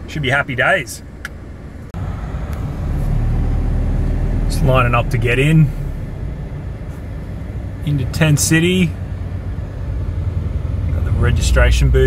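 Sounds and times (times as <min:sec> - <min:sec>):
engine idling rumble: 0:00.0 - 0:12.0.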